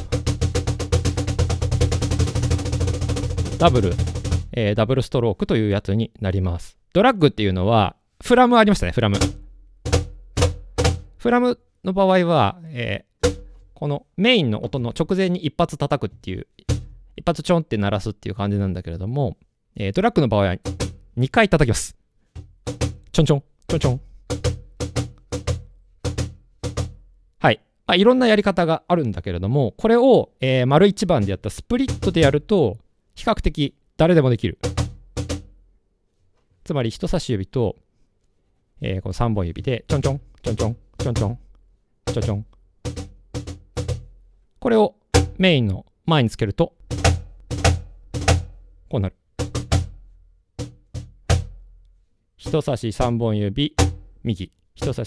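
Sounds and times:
fingertip taps on a cajon: 9.1s - 11.2s, 13.2s - 13.6s, 16.6s - 17.0s, 20.6s - 21.0s, 22.4s - 23.1s, 23.7s - 27.0s, 31.8s - 32.4s, 34.6s - 35.5s, 39.9s - 44.1s, 45.2s - 45.4s, 46.9s - 48.6s, 49.4s - 50.0s, 50.6s - 51.7s, 53.8s - 54.1s.

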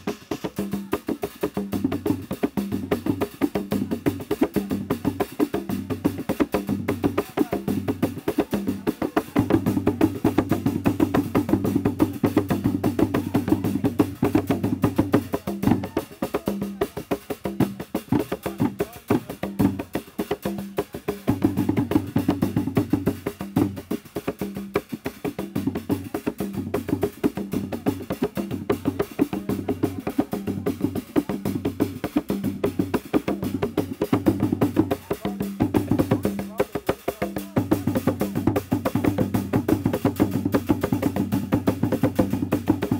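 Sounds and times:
drums in fast rhythm: 0.0s - 42.9s.

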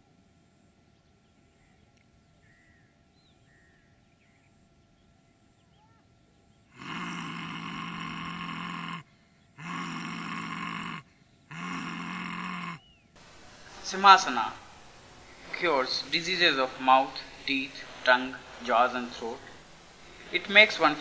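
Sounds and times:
man roaring haaa: 6.8s - 12.8s.

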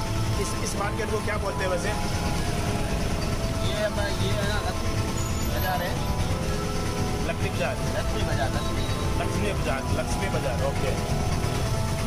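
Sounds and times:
auto-rickshaw engine rumbling: 0.0s - 12.0s
music with held notes: 0.0s - 12.0s.

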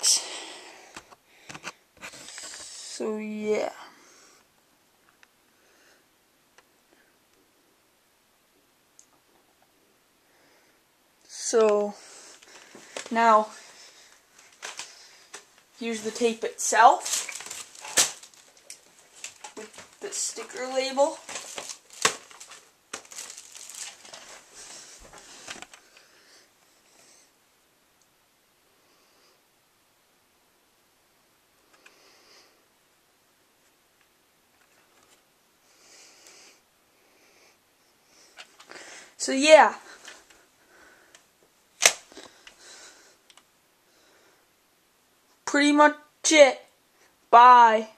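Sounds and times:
rustling: 11.7s - 27.3s
plastic cassette handling clicks: 21.2s - 24.3s, 41.8s - 42.3s.

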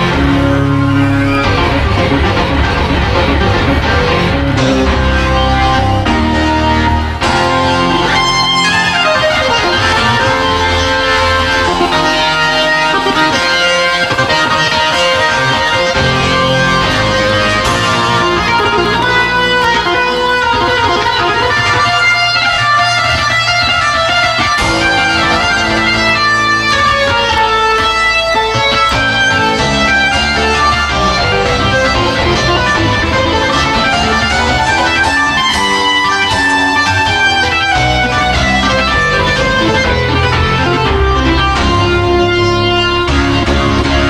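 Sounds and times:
organ playing chords: 0.0s - 44.0s.

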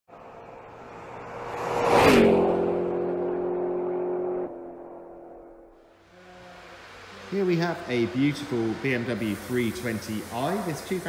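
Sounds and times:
car engine passing by: 0.1s - 11.0s.

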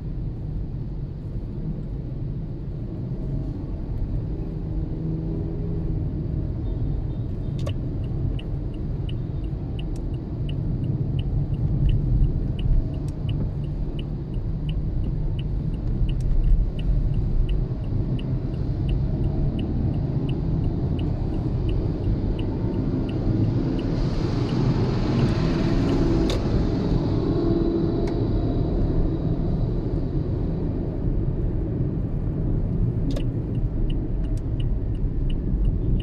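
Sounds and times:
road and engine rumble: 0.0s - 36.0s.

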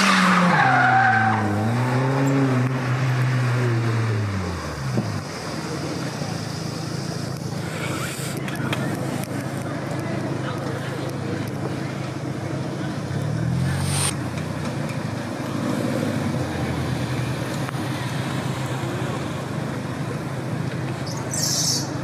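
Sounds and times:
car engine revving: 0.0s - 9.6s, 12.5s - 19.2s
car engines running: 0.0s - 22.0s.

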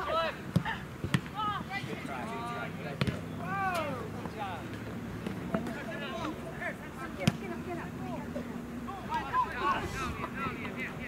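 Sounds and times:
distant shouts of players: 2.9s - 4.4s
wind noise on microphone: 9.6s - 10.4s.

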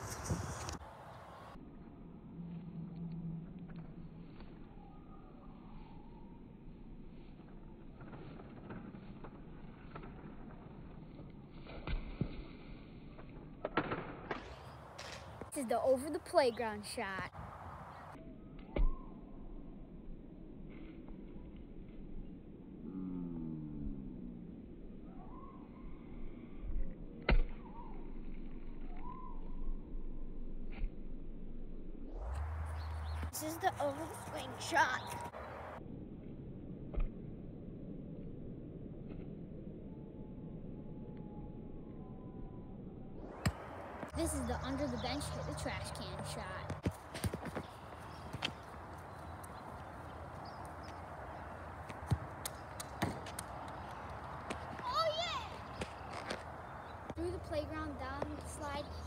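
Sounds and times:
steady outdoor hiss: 0.0s - 1.6s, 43.4s - 59.0s
birds chirping: 14.5s - 18.2s, 32.4s - 35.8s, 43.4s - 59.0s
ball thudding on ground: 43.3s - 44.2s, 46.6s - 48.6s, 51.8s - 53.5s.

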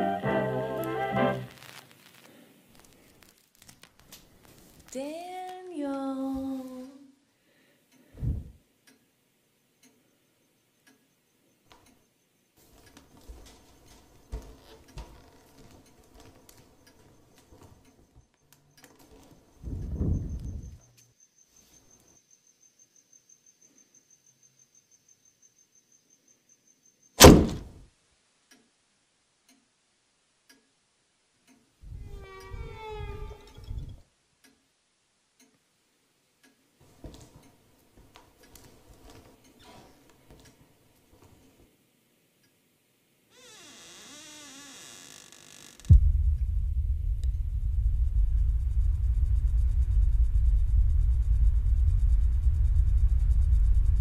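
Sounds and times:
crickets chirping: 10.0s - 27.2s, 43.4s - 54.0s
low rumble: 45.9s - 54.0s.

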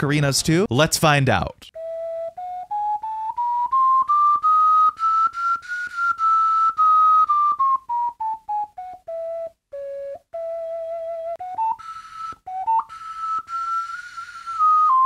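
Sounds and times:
ocarina notes: 1.7s - 15.0s.

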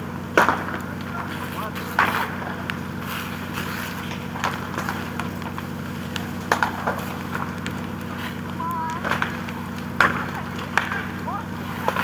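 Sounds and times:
burning timber cracking and popping: 0.0s - 12.0s
low motor hum: 0.0s - 12.0s.

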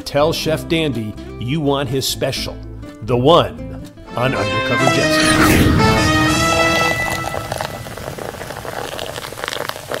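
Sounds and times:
sparkling wine fizzing in a glass: 6.0s - 10.0s.

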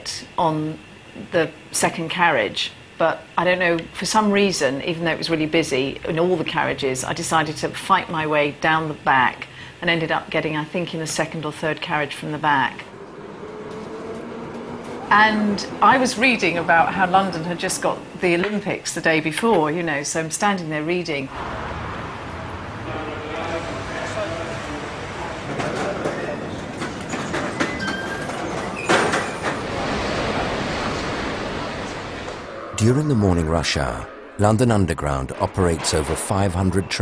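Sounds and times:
underground train running: 0.0s - 37.0s
wheel squeals: 23.4s - 32.5s.

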